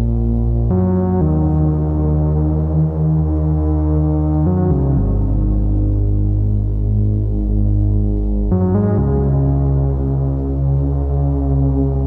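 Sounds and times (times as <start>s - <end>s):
sustained synthesizer chord: 0.0s - 12.0s.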